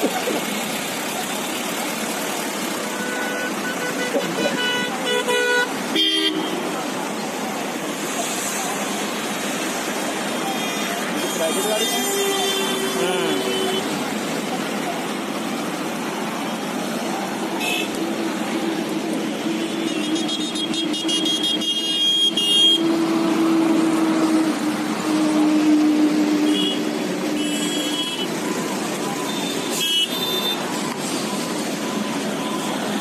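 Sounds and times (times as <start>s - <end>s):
car horns: 2.8s - 6.9s, 10.3s - 14.1s, 17.5s - 18.1s, 19.4s - 33.0s.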